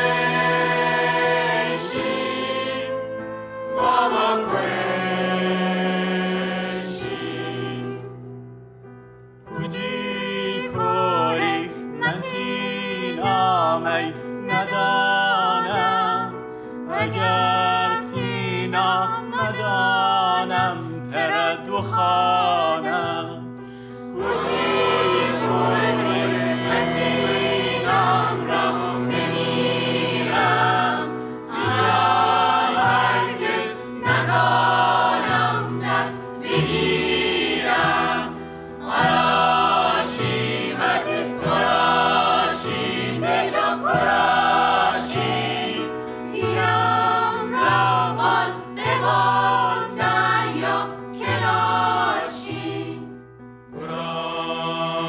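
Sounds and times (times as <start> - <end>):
mixed choir singing: 0.0 - 8.2, 9.6 - 23.4, 24.1 - 55.0.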